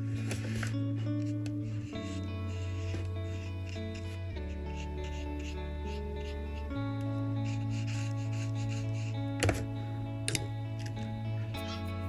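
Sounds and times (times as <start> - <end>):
brush rubbing on paper: 0.0 - 9.7
guitar music: 0.0 - 12.0.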